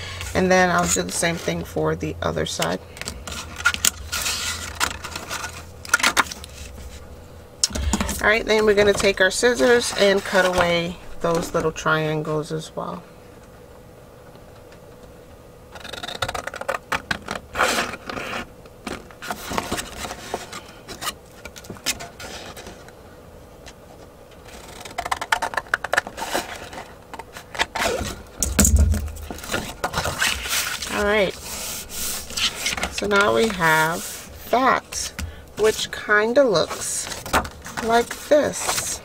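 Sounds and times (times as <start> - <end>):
paper rustling and scraping: 3.0 - 7.1, 7.8 - 11.8, 15.8 - 22.9, 24.4 - 28.3, 29.0 - 39.0
low thump: 28.4 - 29.2.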